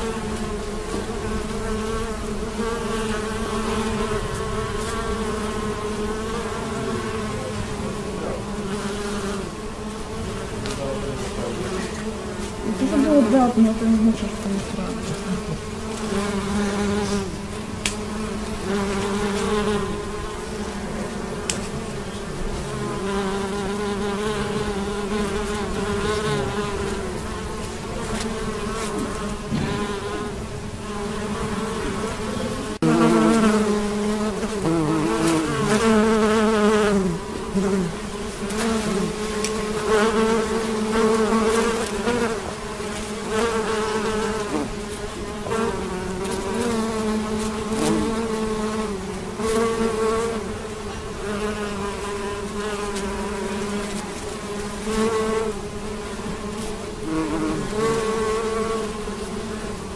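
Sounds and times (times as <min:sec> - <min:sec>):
bees buzzing: 0:00.0 - 0:59.9.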